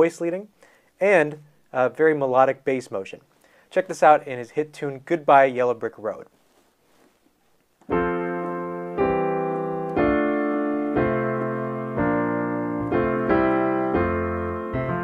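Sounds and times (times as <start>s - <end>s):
piano chords on digital keyboard: 7.8s - 15.0s.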